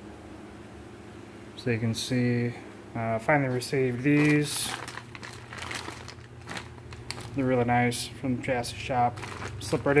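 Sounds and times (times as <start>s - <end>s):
plastic bag crinkling: 3.3s - 8.0s, 8.7s - 10.0s.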